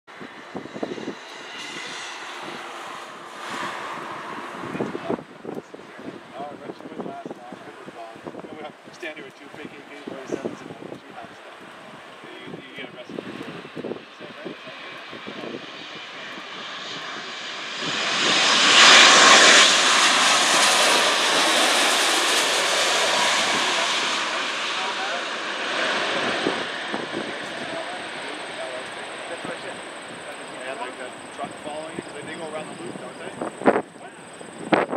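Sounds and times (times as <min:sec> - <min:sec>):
jet engines on approach: 0:00.1 - 0:34.9.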